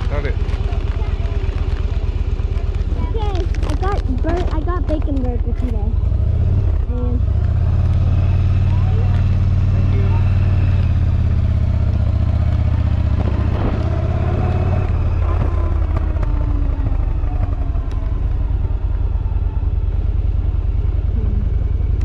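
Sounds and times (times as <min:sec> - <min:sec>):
motorcycle engine riding: 0:00.0 - 0:22.0.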